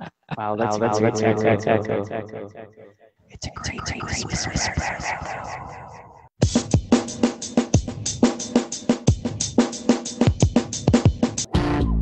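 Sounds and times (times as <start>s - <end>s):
fast drum kit pattern: 6.4s - 11.5s.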